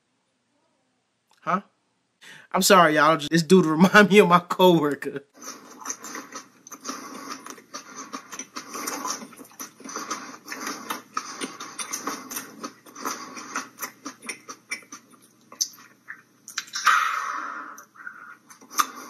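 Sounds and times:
man chewing with wet mouth noises: 0:05.4 - 0:19.0.

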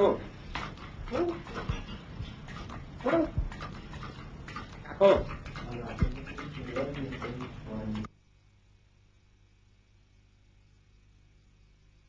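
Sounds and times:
parrot mimicking speech: 0:01.1 - 0:01.8, 0:03.0 - 0:03.5, 0:04.8 - 0:06.8.

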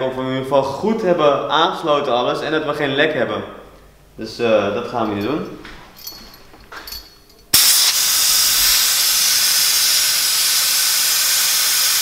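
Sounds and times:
compressed air tool hissing: 0:07.6 - 0:12.0.

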